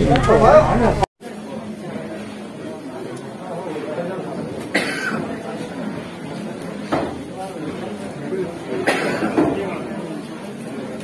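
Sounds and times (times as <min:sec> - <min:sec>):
low background voices: 0:00.0 - 0:11.0
person coughing: 0:04.7 - 0:05.2, 0:08.8 - 0:09.4.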